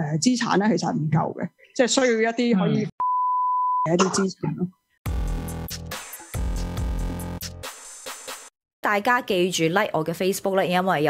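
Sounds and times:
electronic bleep tone: 3.0s - 4.0s
woman speaking: 8.8s - 11.0s.

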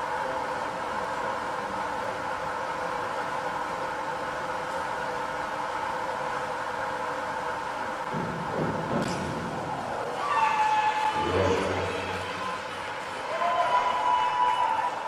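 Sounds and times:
indoor hall hum: 0.0s - 15.0s.

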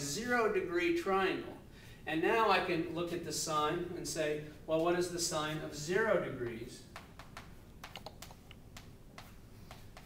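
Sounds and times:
chalk tapping and scratching: 6.4s - 10.0s.

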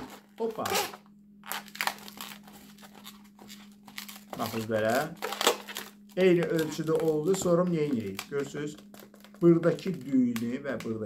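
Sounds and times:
balloon rubber creaking: 0.0s - 10.2s.

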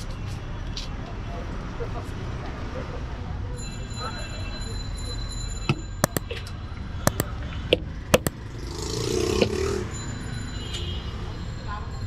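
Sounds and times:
mug knocking: 6.0s - 6.2s, 7.1s - 7.3s, 8.2s - 8.4s.

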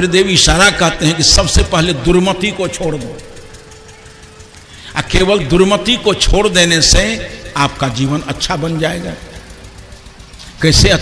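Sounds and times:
man speaking: 0.0s - 3.3s, 4.9s - 9.4s, 10.6s - 11.0s.

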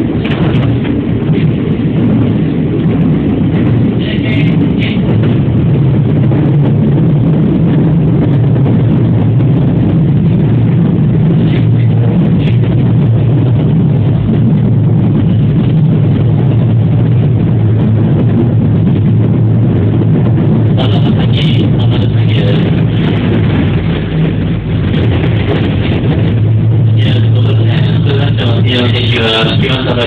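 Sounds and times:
electric train rumbling: 0.0s - 30.0s.

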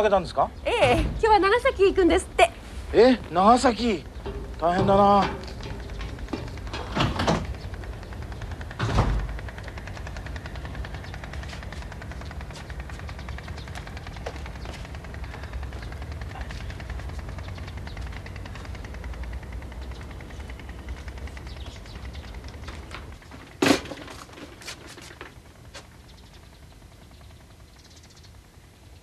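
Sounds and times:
low rumble with crackle: 0.8s - 27.7s
metal gate shutting: 4.2s - 7.6s, 8.8s - 9.3s.

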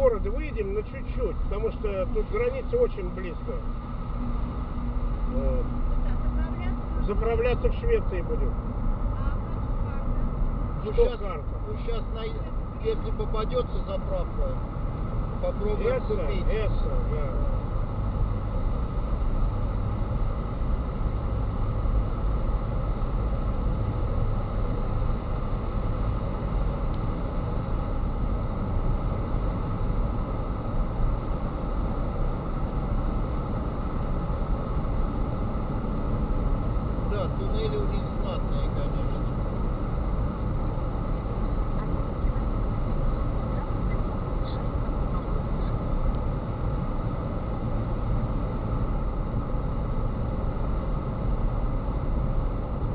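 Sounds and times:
car road and engine noise: 0.0s - 52.9s.

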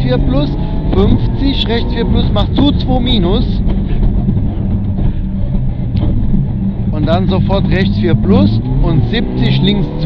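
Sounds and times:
car engine running under load: 0.0s - 10.0s
tyre and road noise: 0.0s - 10.0s.

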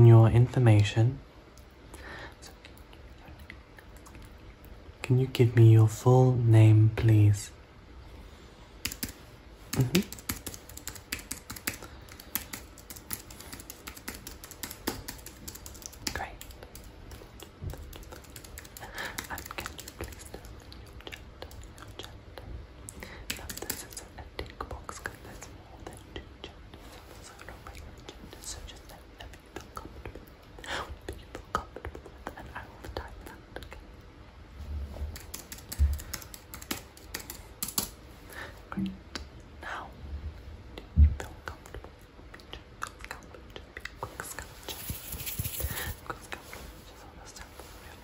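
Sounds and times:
keyboard typing: 8.8s - 20.6s, 23.2s - 24.1s, 35.1s - 38.0s.

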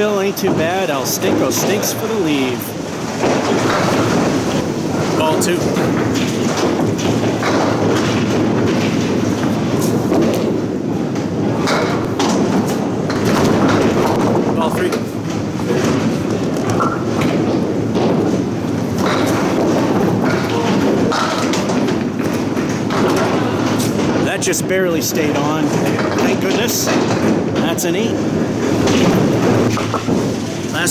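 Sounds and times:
bowling balls rolling on wooden lanes: 0.0s - 30.9s
bowling pins clattering: 0.0s - 30.9s.

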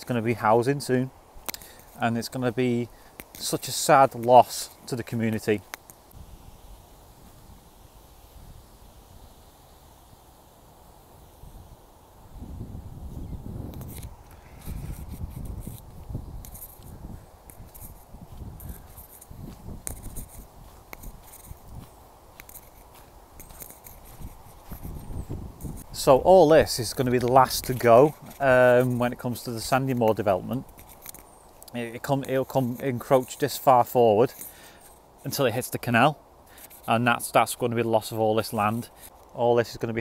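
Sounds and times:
microphone handling rustle: 11.2s - 39.4s
footsteps on a footpath: 13.8s - 30.7s.

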